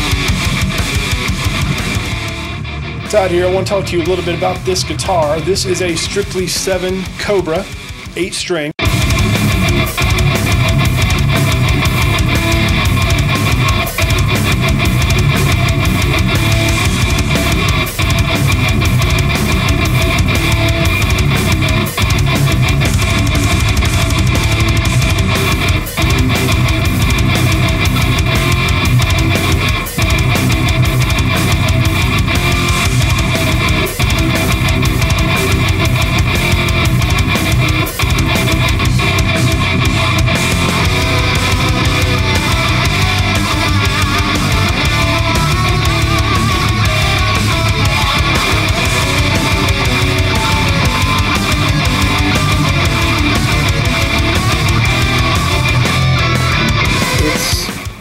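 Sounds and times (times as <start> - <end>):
heavy metal music: 0.0 - 58.0.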